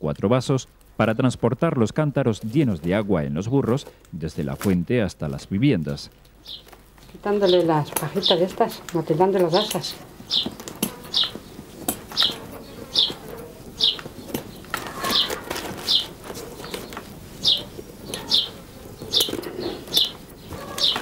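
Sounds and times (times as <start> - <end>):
small bird chirping: 6.4 - 21.0
knife trimming basket straws: 7.9 - 21.0.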